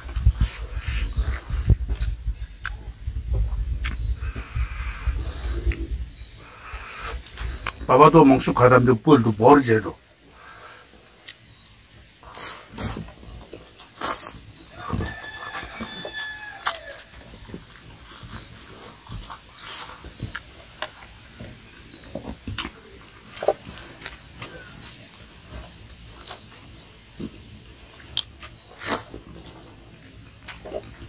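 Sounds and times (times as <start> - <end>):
man chewing and lip-smacking: 0.0 - 6.2, 6.8 - 7.9, 11.1 - 31.0.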